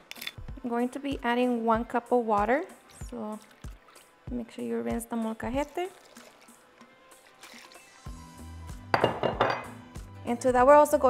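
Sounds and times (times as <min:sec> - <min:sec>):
water trickling into plastic liner: 0:02.8 - 0:04.0, 0:05.5 - 0:06.6
background music with bass line: 0:07.9 - 0:11.0.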